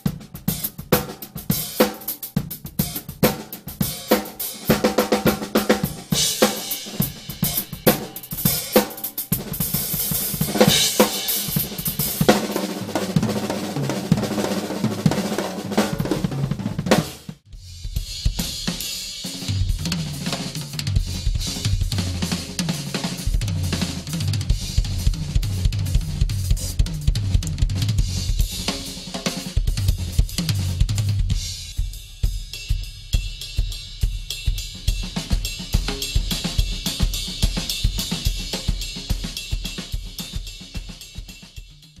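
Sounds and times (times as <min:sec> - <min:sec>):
drum kit played hard: 0:00.0 - 0:42.0
drum-led track with hi-hat: 0:00.0 - 0:42.0
crashing cymbals: 0:05.9 - 0:12.3, 0:17.5 - 0:19.7.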